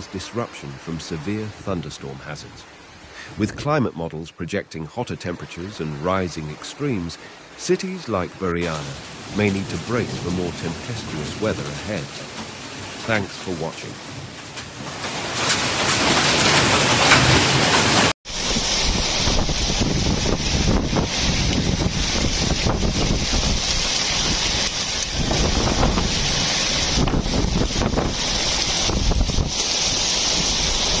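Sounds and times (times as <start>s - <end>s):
heavy rain pouring: 0.0s - 31.0s
windstorm with driving rain: 0.0s - 31.0s
wind buffeting microphone: 15.5s - 31.0s.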